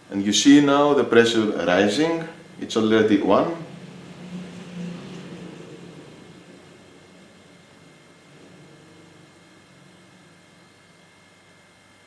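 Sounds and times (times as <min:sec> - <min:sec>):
compressor humming: 0:00.0 - 0:12.0.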